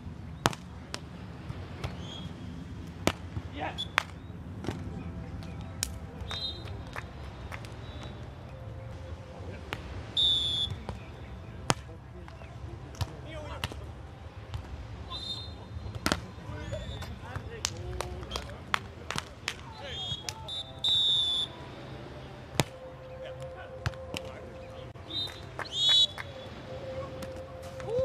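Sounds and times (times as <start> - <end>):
players calling: 3.4 - 12.6, 15.0 - 28.0
referee whistle: 6.3 - 6.7, 10.2 - 10.8, 15.1 - 15.6, 19.7 - 21.6, 25.1 - 26.2.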